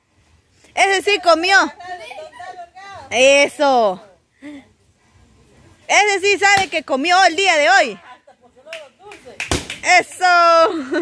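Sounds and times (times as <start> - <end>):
stick knocking pinata: 9.4 - 9.8.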